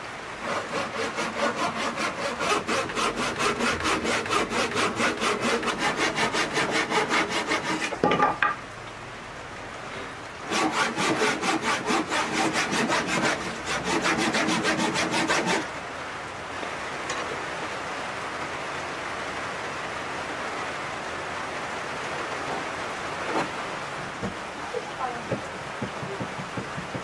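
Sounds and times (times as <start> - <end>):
handsaw cutting wood: 0.4 - 8.0, 10.5 - 15.7.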